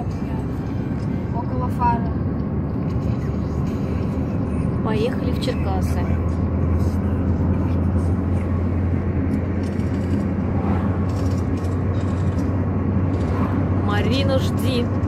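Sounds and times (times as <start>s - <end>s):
car cabin road rumble: 0.0s - 15.0s.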